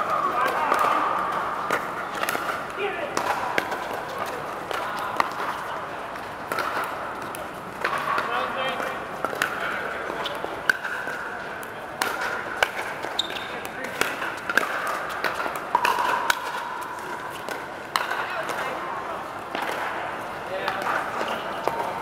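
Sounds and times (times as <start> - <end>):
indistinct chatter of players: 0.0 - 22.0
paddles hitting plastic ball: 0.0 - 22.0.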